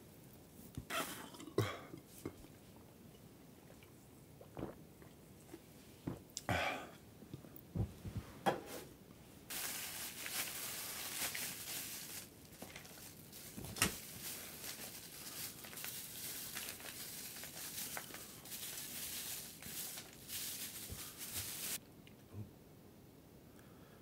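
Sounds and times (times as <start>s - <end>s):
plastic wrapping crinkling: 9.5s - 21.8s.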